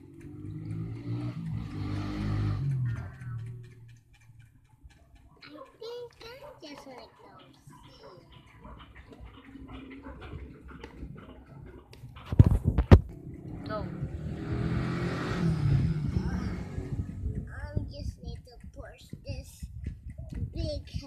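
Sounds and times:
faint child murmuring: 0:05.4 - 0:08.4.

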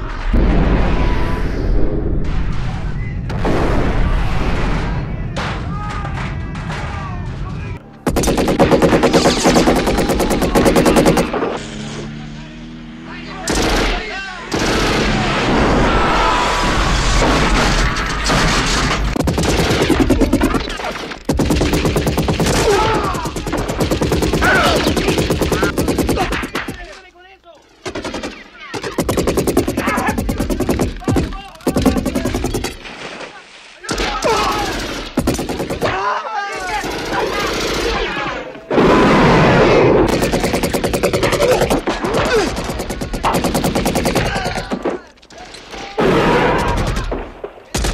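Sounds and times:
rocket launcher firing: 0:00.0 - 0:05.7
large explosion rumbling: 0:00.0 - 0:07.8, 0:14.8 - 0:20.6
automatic rifle fire: 0:08.1 - 0:11.6, 0:13.5 - 0:15.4, 0:17.3 - 0:26.8, 0:27.8 - 0:32.8, 0:39.8 - 0:44.7.

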